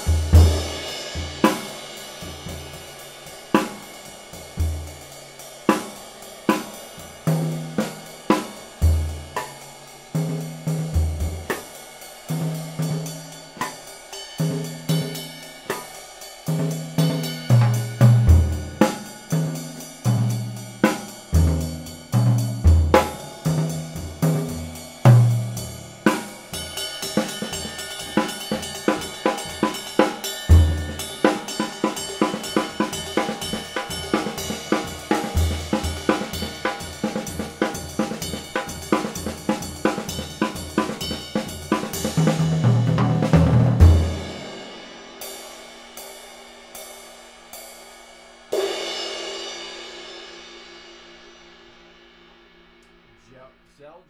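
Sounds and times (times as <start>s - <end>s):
bass drum and snare groove: 0.0s - 11.7s, 16.5s - 44.5s.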